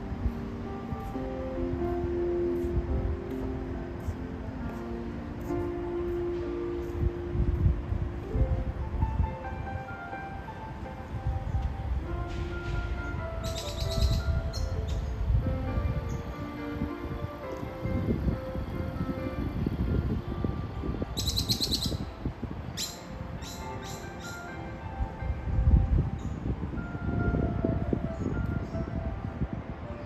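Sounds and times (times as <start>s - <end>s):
soft background music: 0.0s - 30.0s
small birds chirping: 13.0s - 15.2s, 21.2s - 22.1s, 22.8s - 24.5s.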